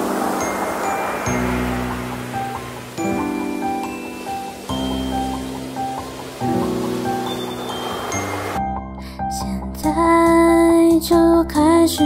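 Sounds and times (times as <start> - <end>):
sustained chords: 0.0 - 8.8
bell-like high melody: 0.0 - 8.9.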